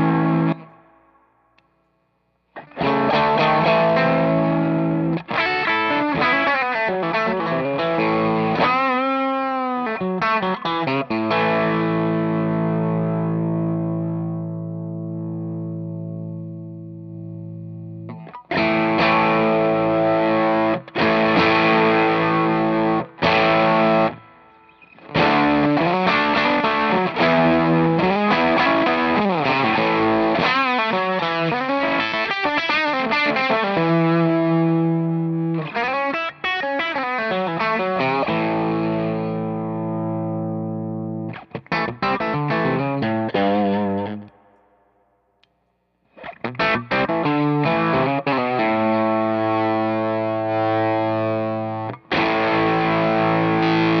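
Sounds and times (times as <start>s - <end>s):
fuzzy distorted electric guitar: 0.0s - 45.4s, 46.0s - 54.0s.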